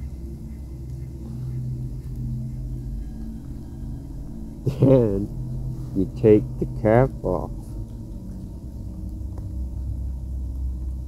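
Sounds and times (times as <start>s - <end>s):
low hum with rumble: 0.0s - 11.0s.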